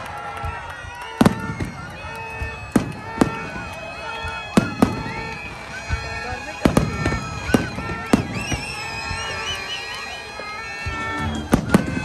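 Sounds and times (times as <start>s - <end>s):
crowd voices: 0.0s - 12.0s
fireworks bursting: 0.0s - 12.0s
music: 0.4s - 12.0s.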